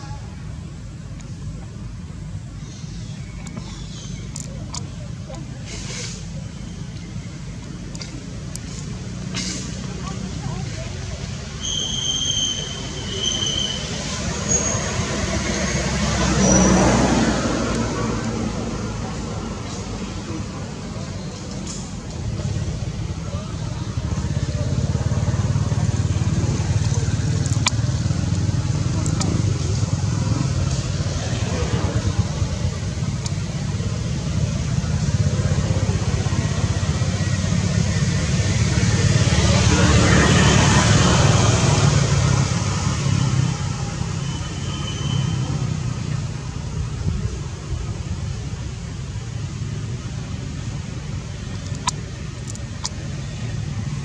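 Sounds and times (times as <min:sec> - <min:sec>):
road traffic drone: 0:00.0 - 0:54.0
vehicle passing: 0:13.8 - 0:21.2, 0:22.2 - 0:44.2.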